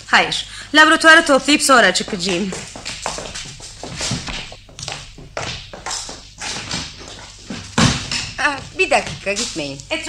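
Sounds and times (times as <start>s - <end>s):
light footsteps: 1.1s - 10.0s.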